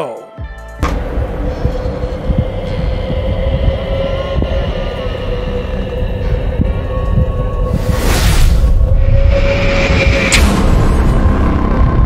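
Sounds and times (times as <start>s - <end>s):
steady held drone tone: 0.8s - 12.0s
deep rumble with low pulses: 1.0s - 12.0s.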